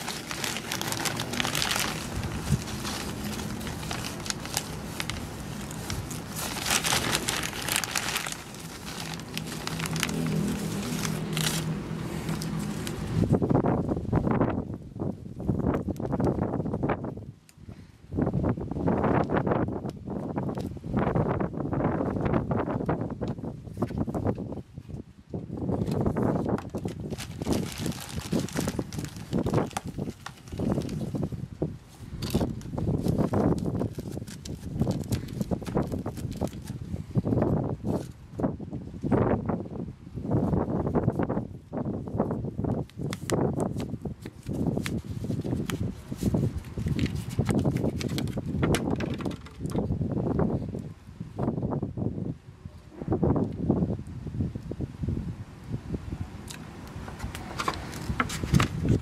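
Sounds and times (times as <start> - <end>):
plastic cups rustling and clicking: 0.0 - 13.2, 25.8 - 31.2, 43.0 - 49.9, 56.9 - 59.0
plastic pot crackling: 0.0 - 13.3, 25.8 - 31.4, 32.1 - 36.9, 42.8 - 49.9.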